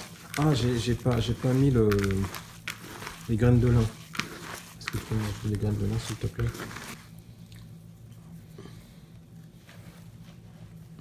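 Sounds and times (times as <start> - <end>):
hand mixing moist pulp in bowl: 0.0 - 8.5
steady low hum: 0.0 - 11.0.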